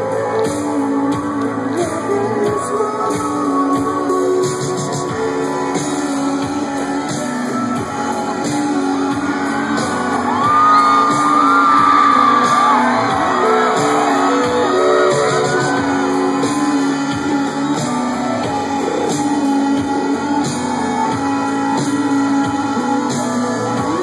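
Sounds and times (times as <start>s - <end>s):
live rock band: 0.0s - 24.0s
voices singing and whooping: 0.0s - 24.0s.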